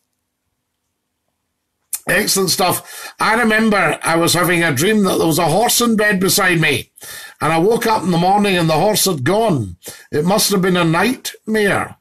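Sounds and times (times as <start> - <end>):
man talking: 2.0 - 12.0.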